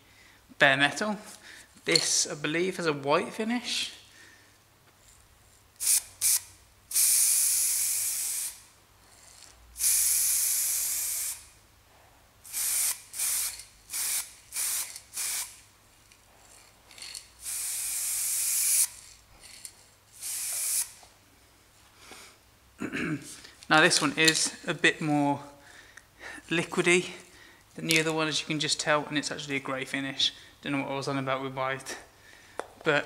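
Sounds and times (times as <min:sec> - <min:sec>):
aerosol can spraying: 0:05.8 - 0:08.6, 0:09.8 - 0:11.5, 0:12.4 - 0:15.6, 0:17.4 - 0:19.0, 0:20.2 - 0:21.0.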